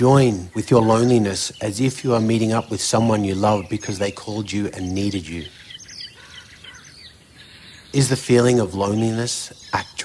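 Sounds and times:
faint bird chirps: 0:00.0 - 0:10.0.

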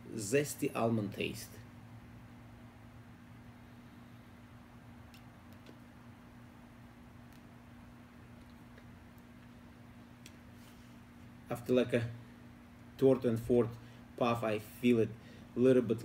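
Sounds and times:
low electrical hum: 0:00.0 - 0:16.0
soft lip clicks: 0:05.0 - 0:05.9, 0:07.2 - 0:07.6, 0:08.3 - 0:09.6, 0:10.2 - 0:10.5.

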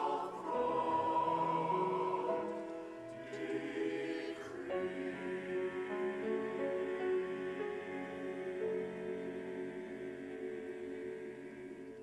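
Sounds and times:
grand piano accompaniment: 0:00.0 - 0:12.0
mixed choir singing a hymn: 0:00.0 - 0:12.0.

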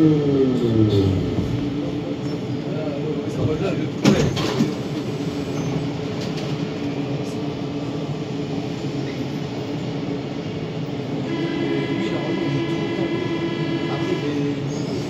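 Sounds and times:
train equipment humming: 0:00.0 - 0:15.0.

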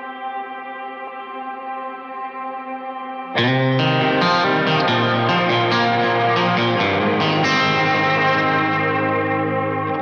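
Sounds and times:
distorted electric guitar chord: 0:03.4 - 0:10.0.

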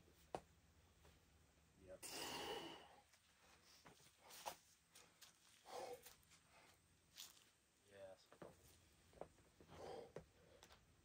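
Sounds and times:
man exhaling forcefully: 0:02.0 - 0:03.0.

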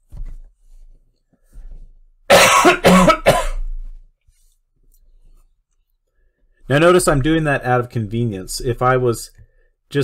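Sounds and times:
person coughing: 0:02.3 - 0:03.8.

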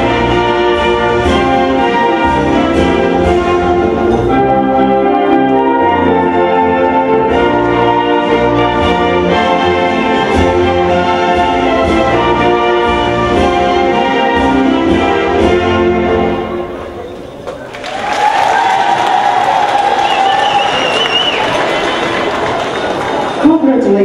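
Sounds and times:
orchestra playing an anthem: 0:00.0 - 0:17.0
brass sustained chords: 0:00.0 - 0:17.1.

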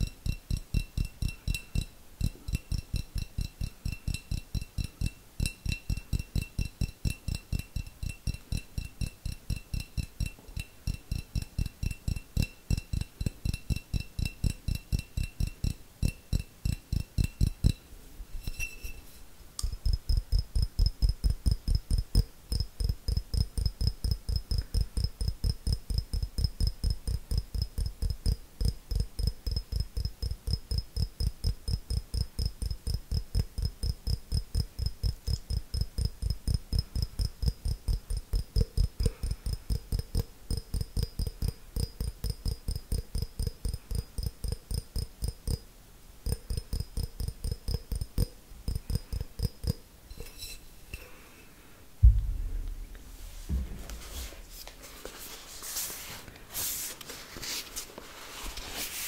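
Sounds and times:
fingers tapping glass jar: 0:00.0 - 0:17.8, 0:19.6 - 0:45.6, 0:46.2 - 0:51.1.

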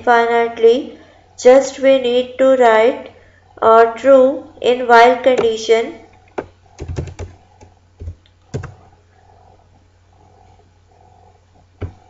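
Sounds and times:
faint low hum: 0:00.0 - 0:12.0
computer keyboard keystrokes: 0:06.2 - 0:08.8.

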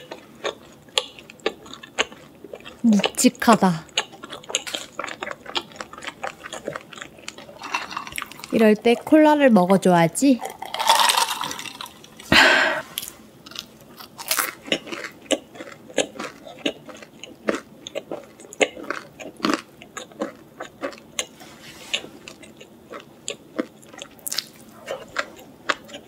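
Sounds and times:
wet crunchy chewing: 0:00.0 - 0:09.1, 0:10.4 - 0:12.3, 0:13.0 - 0:26.0
person drinking: 0:10.4 - 0:13.1
breathy burst: 0:12.3 - 0:13.0.

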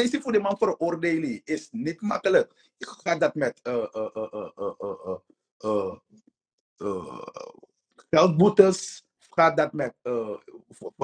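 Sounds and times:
person speaking: 0:00.0 - 0:06.1, 0:06.8 - 0:11.0.

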